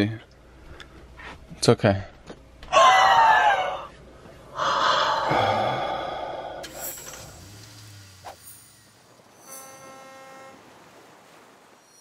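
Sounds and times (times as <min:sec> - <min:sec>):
soft chime-like tone: 0:08.4 - 0:10.6, 0:11.8 - 0:12.0.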